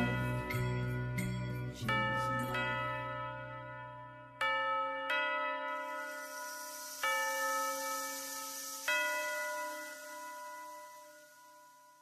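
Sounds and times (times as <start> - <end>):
bell ringing: 0.0 - 12.0.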